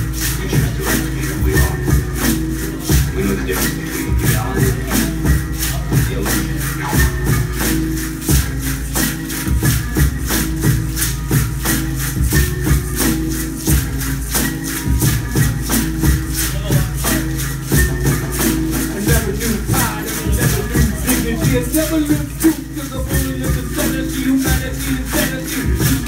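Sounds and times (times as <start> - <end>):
deep beat: 0.0 - 26.0
hand rattles shaking: 0.0 - 26.0.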